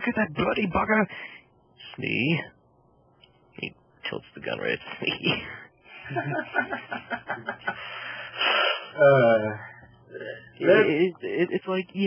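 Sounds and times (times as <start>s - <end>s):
breathy hissing exhale: 7.7s - 9.0s.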